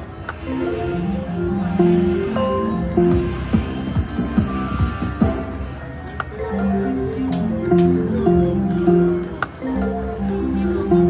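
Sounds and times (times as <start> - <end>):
slot machine electronic tune: 0.4 - 11.0.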